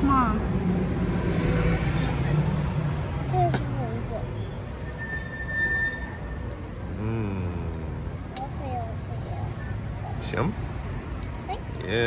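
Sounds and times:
street traffic: 0.0s - 12.0s
vehicle engine humming: 6.0s - 12.0s.

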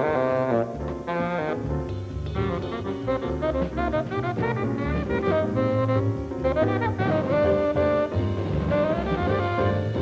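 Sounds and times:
double bass: 0.0s - 10.0s
tenor saxophone jazz line: 0.0s - 10.0s.

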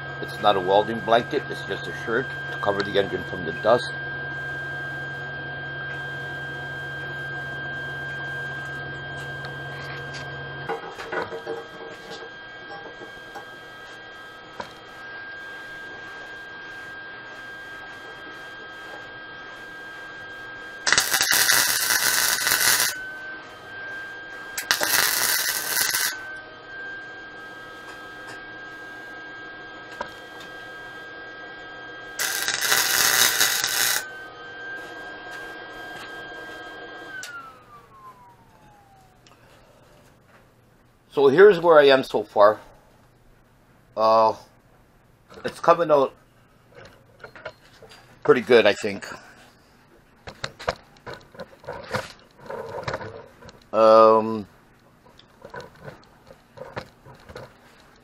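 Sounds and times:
arc welder welding: 0.0s - 5.3s, 15.6s - 26.4s, 32.0s - 37.2s.

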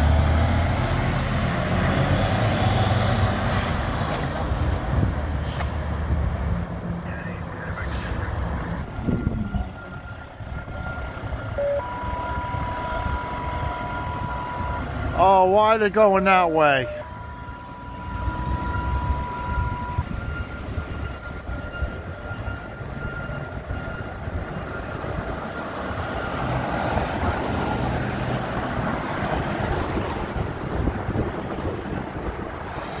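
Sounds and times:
fire engine diesel rumbling: 0.0s - 33.0s.

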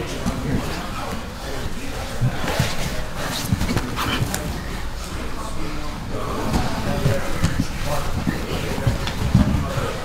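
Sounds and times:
indistinct voices: 0.0s - 10.0s
bodies thumping on mats: 6.4s - 10.0s.

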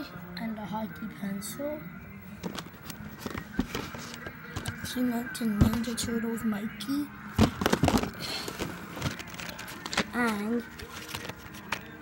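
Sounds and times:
packaging rustling: 2.4s - 4.9s, 7.4s - 12.0s
clicks of toy packaging: 7.4s - 11.9s.

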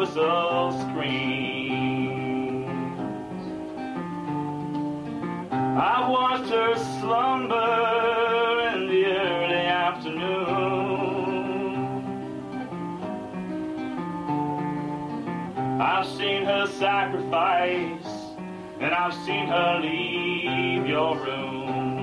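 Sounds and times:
man singing with vibrato: 0.0s - 3.3s, 5.6s - 12.6s, 15.6s - 22.0s
acoustic guitar: 0.0s - 22.0s.

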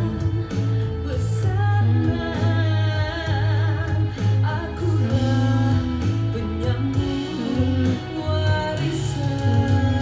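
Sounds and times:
backing track with bass: 0.0s - 10.0s
woman singing: 0.0s - 10.0s.

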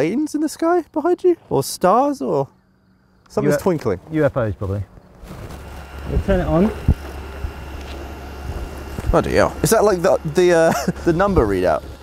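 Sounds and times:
generator engine running: 4.4s - 12.0s.

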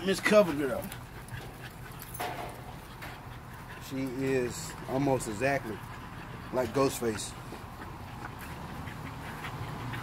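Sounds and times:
puppies making faint sounds: 0.0s - 10.0s.

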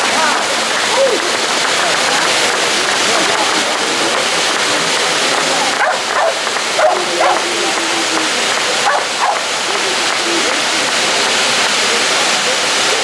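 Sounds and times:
fireworks sparks hissing: 0.2s - 13.0s
dog barking: 5.8s - 7.4s, 8.8s - 9.4s.

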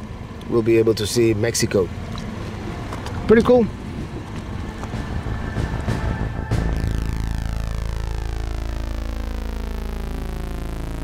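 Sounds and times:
drone propellers whirring: 4.0s - 11.0s.

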